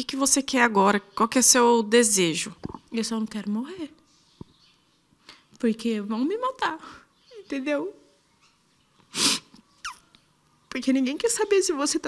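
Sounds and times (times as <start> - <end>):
woman sniffing: 9.1 - 9.6.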